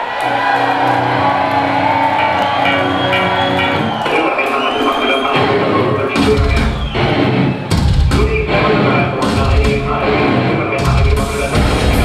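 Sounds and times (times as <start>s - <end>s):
crowd cheering: 0.0s - 12.0s
live metal band music: 0.1s - 12.0s.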